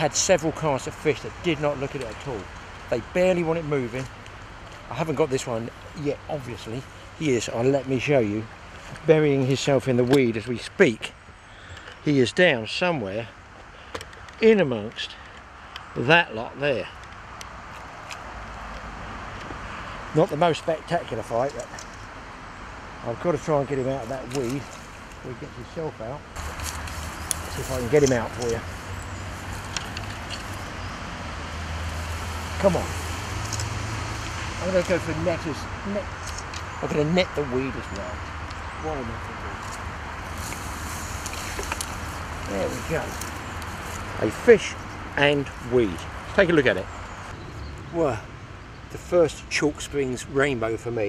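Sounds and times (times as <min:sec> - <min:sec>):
road traffic going by: 0:00.0 - 0:51.0.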